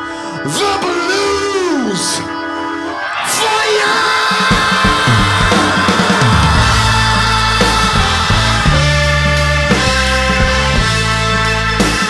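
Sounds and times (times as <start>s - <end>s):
drum hits: 4.4s - 10.8s
held keyboard chord: 4.4s - 12.0s
sliding bass notes: 4.4s - 12.0s.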